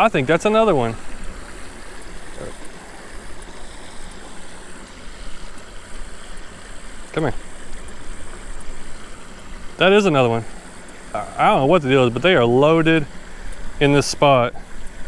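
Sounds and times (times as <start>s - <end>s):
water rushing over spillway: 0.0s - 15.0s.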